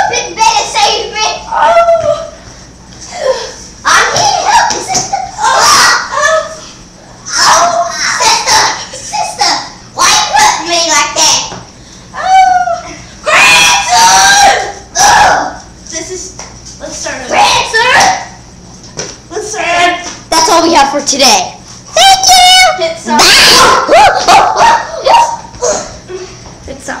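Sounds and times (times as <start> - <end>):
girls crying out and laughing: 5.1 - 8.2
child screaming: 5.4 - 6.6, 7.2 - 8.8, 12.2 - 15.6, 22.0 - 25.9.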